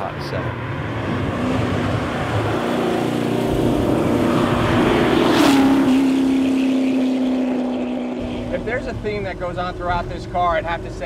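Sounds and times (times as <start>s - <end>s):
car engine driving past: 0.2s - 9.1s.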